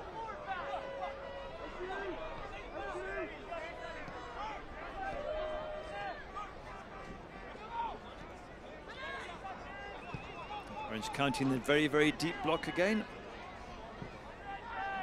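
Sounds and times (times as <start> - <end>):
players shouting: 0.0 - 6.8, 8.9 - 13.0
crowd chatter: 0.0 - 15.0.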